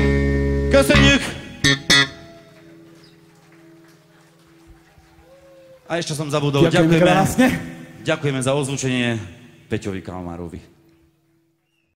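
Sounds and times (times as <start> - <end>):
electric guitar and bass chord: 0.0 - 2.3.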